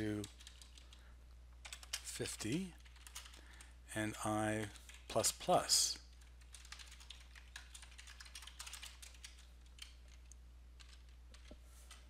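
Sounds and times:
typing on keyboard: 0.0 - 1.0, 1.6 - 2.1, 2.8 - 3.4, 6.2 - 12.0
low steady hum: 0.0 - 12.0.

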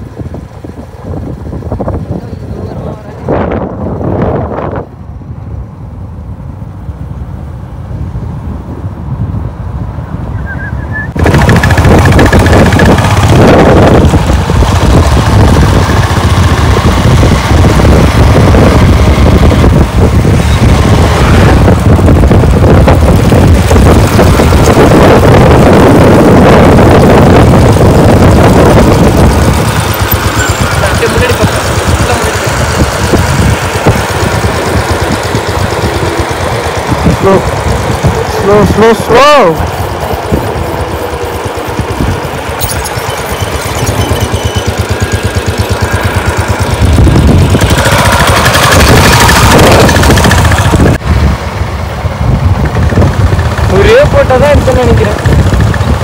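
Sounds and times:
wind buffeting microphone: 0.0 - 56.0
motorcycle engine running: 11.1 - 56.0.

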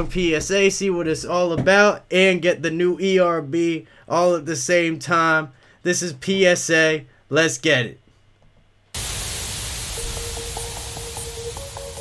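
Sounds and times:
tv static hiss: 8.9 - 12.0.

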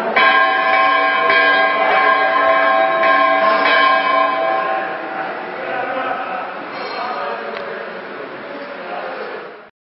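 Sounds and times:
temple bell ringing: 0.0 - 5.7.

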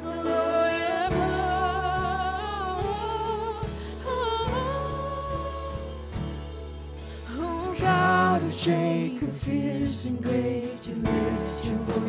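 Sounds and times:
bass: 0.0 - 12.0.

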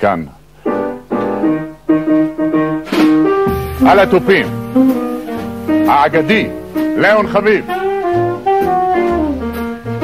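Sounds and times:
jazz piano chords: 0.6 - 10.0.

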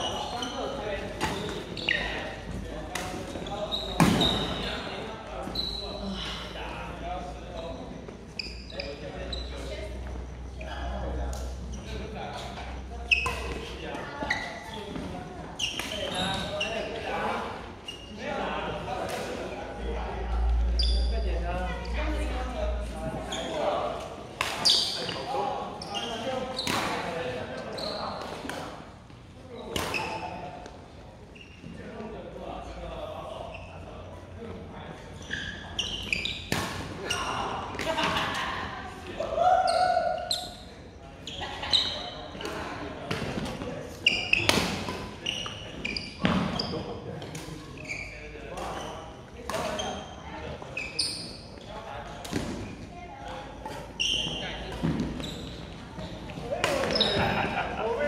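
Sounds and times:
sneakers squeaking on wooden floor: 0.0 - 6.1, 7.6 - 10.9, 11.6 - 17.2, 20.6 - 22.0, 23.0 - 30.4, 31.3 - 31.9, 35.1 - 38.2, 39.7 - 58.0.

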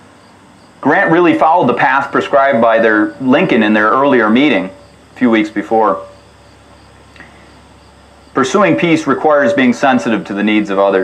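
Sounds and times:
crickets chirring: 0.0 - 11.0
low steady hum: 0.0 - 11.0.

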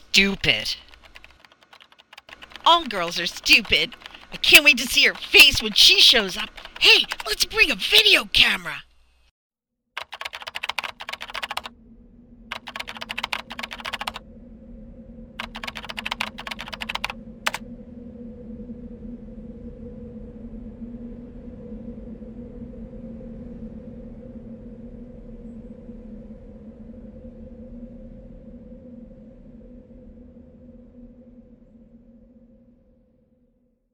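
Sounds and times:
keyboard typing: 0.4 - 8.6, 10.0 - 11.7, 12.5 - 14.2, 15.4 - 17.6.

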